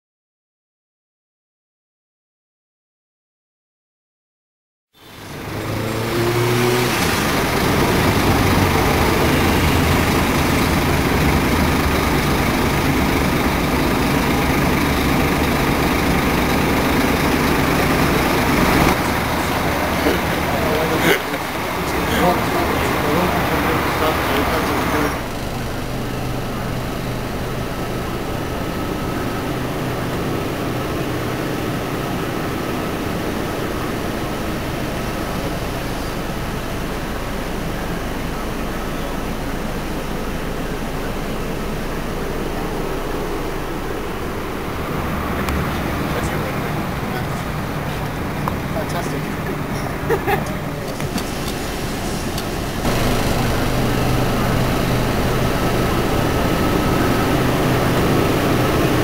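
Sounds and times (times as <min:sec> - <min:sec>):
coach engine drone: 0:05.0 - 0:59.0
indistinct voices: 0:05.1 - 0:59.0.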